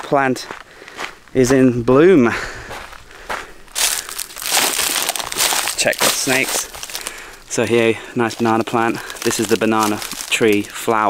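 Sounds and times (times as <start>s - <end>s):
footsteps crunching dry leaves: 2.6s - 11.0s.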